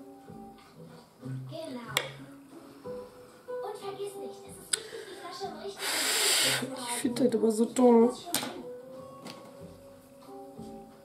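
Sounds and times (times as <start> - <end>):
soft music from television: 0.0 - 11.0.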